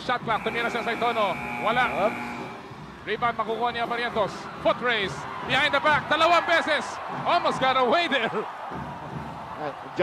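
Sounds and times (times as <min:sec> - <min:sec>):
shot clock buzzer: 0:00.4 - 0:02.6.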